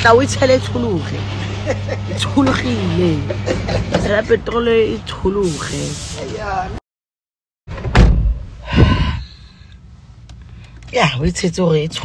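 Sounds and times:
loud thump: 7.7s - 9.2s.

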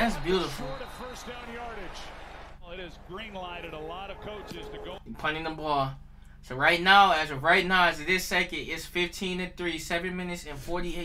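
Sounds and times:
man commentating football on tv: 0.0s - 6.0s.

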